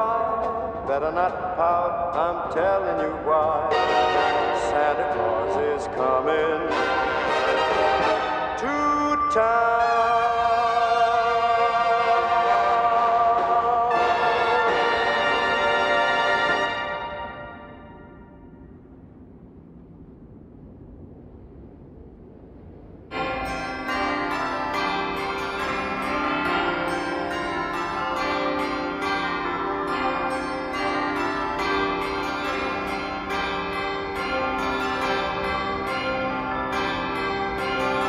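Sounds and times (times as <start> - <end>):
faint low hum: 0.0 - 38.0
peal of bells ringing: 2.6 - 5.9, 10.2 - 18.6, 23.1 - 38.0.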